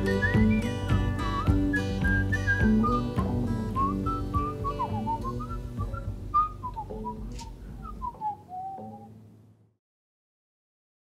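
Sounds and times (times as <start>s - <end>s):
man whistling a melody: 0.0s - 9.2s
guitar accompaniment: 0.0s - 9.4s.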